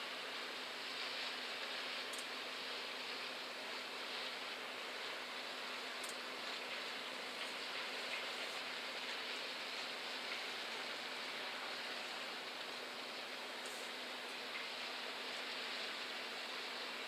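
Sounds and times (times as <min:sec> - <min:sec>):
hiss of distant outdoor ambience: 0:00.0 - 0:17.0.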